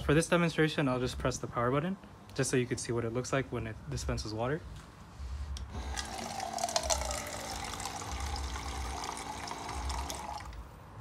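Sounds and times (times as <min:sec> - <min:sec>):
electric pump motor humming: 0:05.7 - 0:10.7
water pouring into plastic cup: 0:05.8 - 0:10.6.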